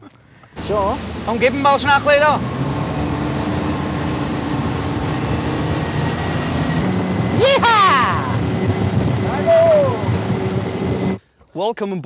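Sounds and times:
motorboat engine humming: 0.5 - 11.2
rushing water and wind: 0.5 - 11.2.

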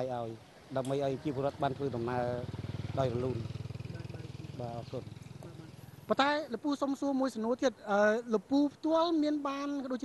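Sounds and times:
man speaking: 0.0 - 10.0
motorcycle engine running: 0.6 - 6.5.

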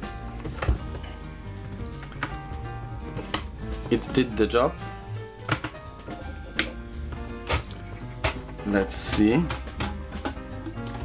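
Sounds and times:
background music: 0.0 - 11.0.

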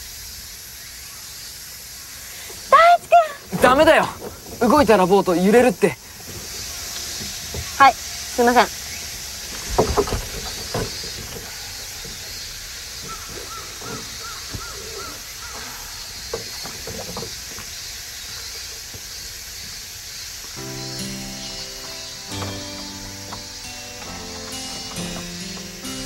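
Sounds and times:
high outdoor hiss: 0.0 - 26.0
oars knocking and dipping in water: 2.4 - 26.0
music: 20.6 - 26.0.

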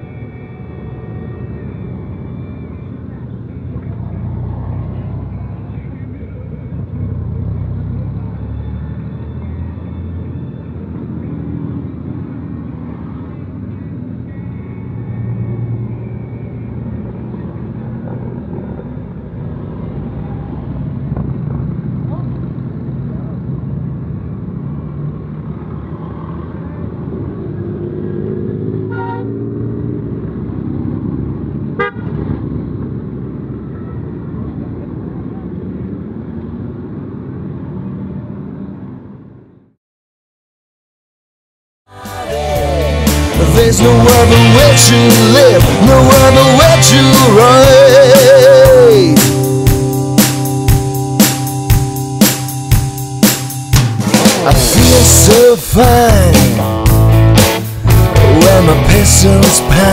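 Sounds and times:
motorcycles riding past: 0.0 - 39.4
horn toots: 28.8 - 29.5, 31.8 - 32.3.

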